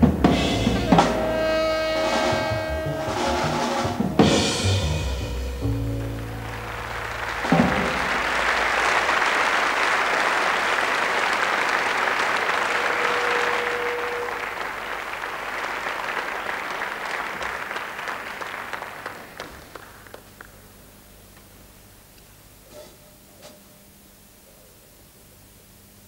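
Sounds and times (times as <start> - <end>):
jazz trio playing: 0.0 - 9.7
audience applauding: 5.1 - 20.9.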